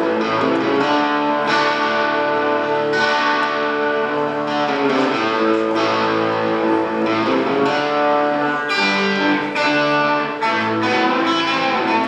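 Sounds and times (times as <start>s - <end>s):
electric guitar chords ringing: 0.0s - 12.0s.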